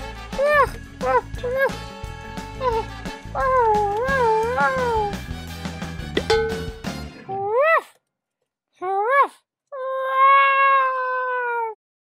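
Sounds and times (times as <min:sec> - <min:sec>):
background music: 0:00.0 - 0:07.6
cat meowing: 0:09.8 - 0:11.8.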